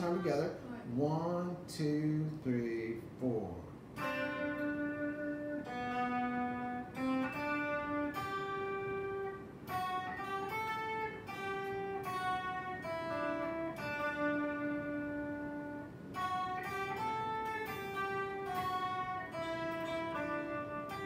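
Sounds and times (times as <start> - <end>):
electric guitar slow melody: 3.9 - 21.0.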